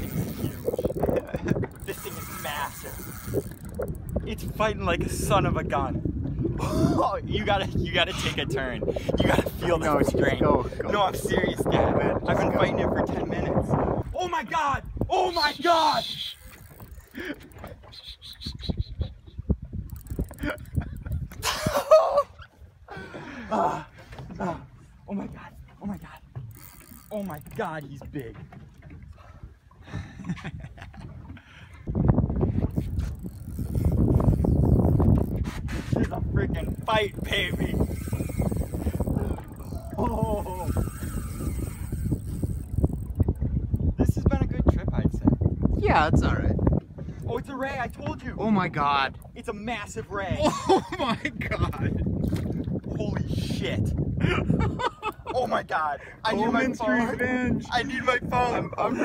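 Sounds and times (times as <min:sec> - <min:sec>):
fishing reel drag clicking: 0:00.0 - 0:04.2, 0:16.0 - 0:17.2, 0:19.8 - 0:21.2, 0:26.5 - 0:27.6, 0:32.7 - 0:35.7, 0:36.6 - 0:43.2
wind buffeting microphone: 0:00.0 - 0:59.0.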